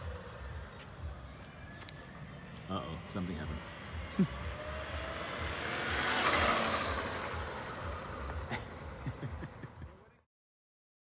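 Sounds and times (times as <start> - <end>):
electric scooter whine: 0.0 - 10.3
road and wind noise: 0.0 - 10.3.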